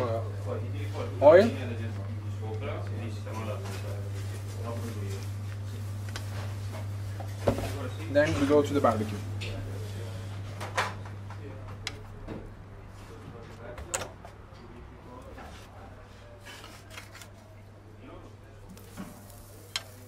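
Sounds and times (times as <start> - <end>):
steady low hum: 0.0 - 16.7.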